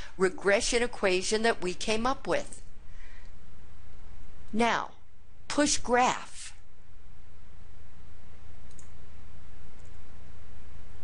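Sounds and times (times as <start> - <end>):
low hum and hiss: 0.0 - 11.0
computer mouse clicks: 8.6 - 9.0, 9.8 - 10.0.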